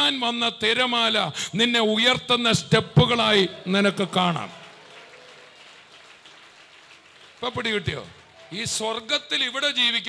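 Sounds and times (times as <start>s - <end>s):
audience applause: 3.2s - 9.1s.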